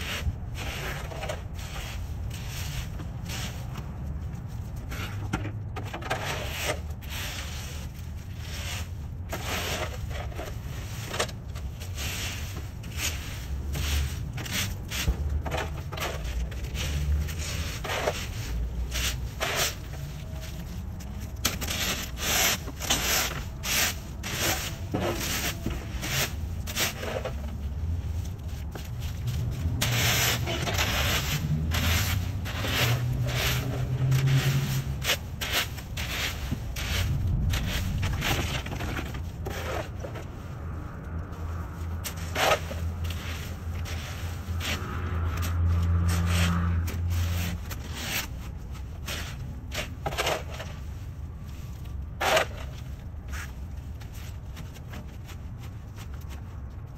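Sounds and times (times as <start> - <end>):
shovel scraping leaves: 0.0 - 3.9, 5.9 - 40.7, 41.3 - 54.8
rake scraping leaves on concrete: 0.0 - 5.2, 5.8 - 56.3
low rumble: 16.2 - 47.9.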